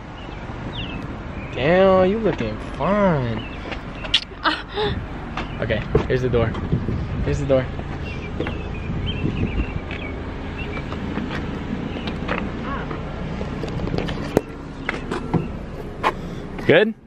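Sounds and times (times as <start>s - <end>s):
car rumble: 0.0s - 17.0s
car door opening: 7.9s - 16.8s.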